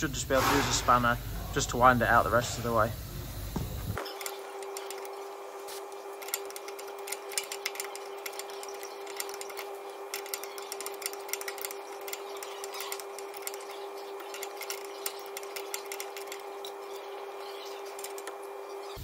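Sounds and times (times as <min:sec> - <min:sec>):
steady background hum: 0:00.0 - 0:19.0
spanner clicking on metal: 0:04.0 - 0:18.4.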